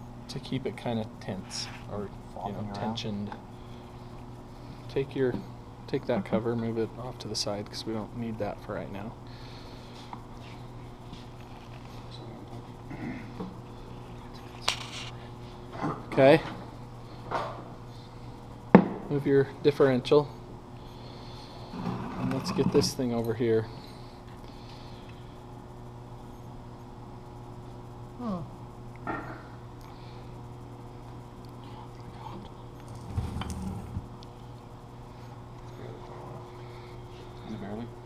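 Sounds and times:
steady electrical hum: 0:00.0 - 0:38.0.

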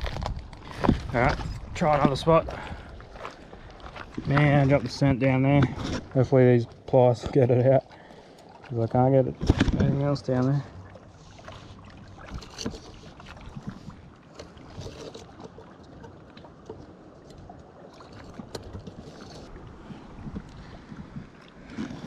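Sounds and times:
water lapping against rocks: 0:00.0 - 0:22.0
wind: 0:00.0 - 0:22.0.

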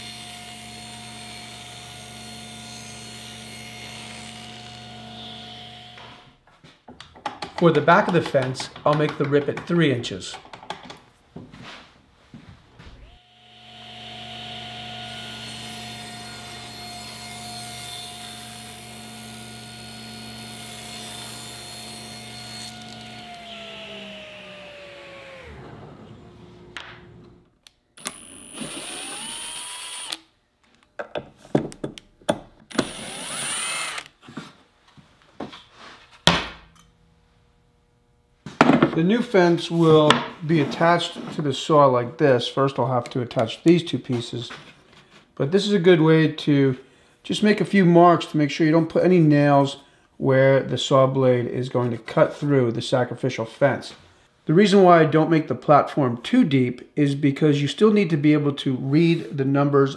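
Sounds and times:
table saw motor running: 0:00.0 - 0:06.2, 0:13.0 - 0:30.2, 0:32.7 - 0:34.1
cordless drill spinning: 0:13.0 - 0:27.4, 0:28.0 - 0:30.3, 0:32.7 - 0:34.2.

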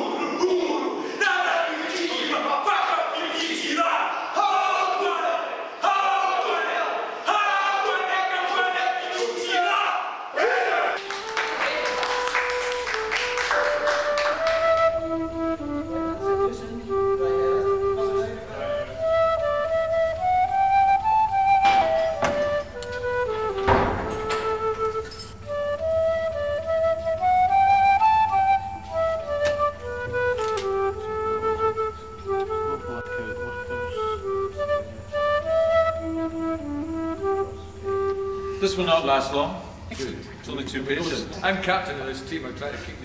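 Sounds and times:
flute melody: 0:10.6 - 0:39.9.

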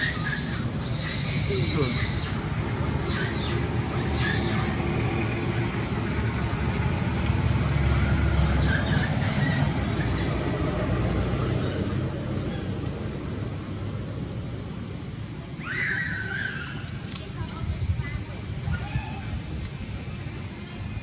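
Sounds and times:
low rumbling background noise: 0:00.0 - 0:21.0.

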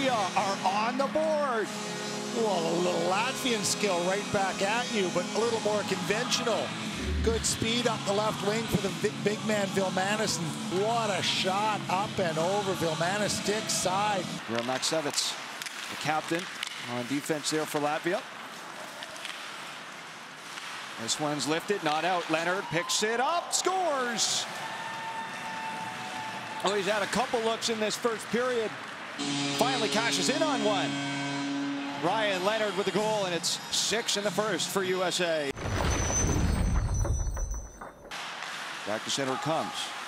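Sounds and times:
ice rink background noise: 0:00.0 - 0:35.5, 0:38.1 - 0:40.0
sparse arena crowd: 0:21.7 - 0:35.5.

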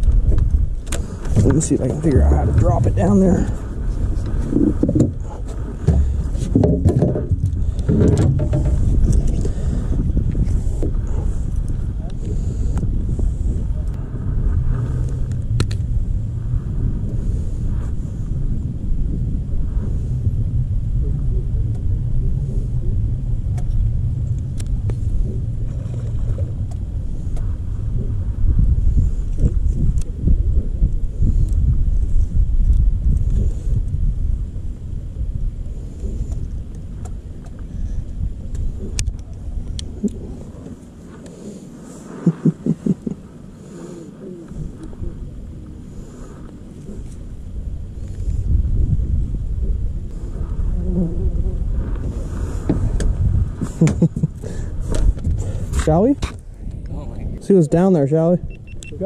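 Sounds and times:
low rumble: 0:00.0 - 0:59.0.

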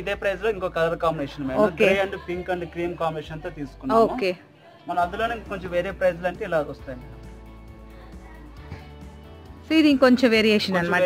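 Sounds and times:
person speaking: 0:01.5 - 0:02.2.

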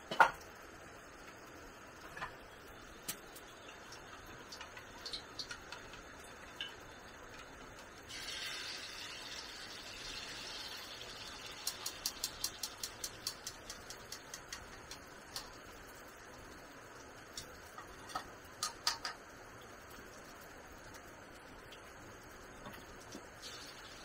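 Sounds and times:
batter sizzling in a hot wok: 0:02.0 - 0:19.6, 0:22.6 - 0:24.0
chopsticks clicking against pan: 0:11.6 - 0:15.6, 0:18.1 - 0:19.2.

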